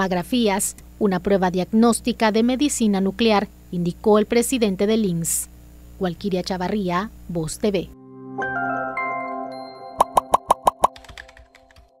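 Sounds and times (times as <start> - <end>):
quick pop sound effects: 10.0 - 11.1.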